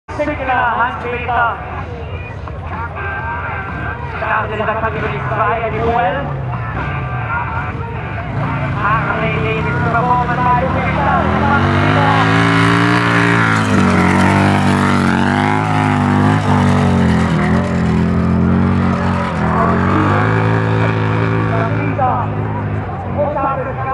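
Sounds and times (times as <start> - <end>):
motorcycle engine revving hard: 8.3 - 22.7.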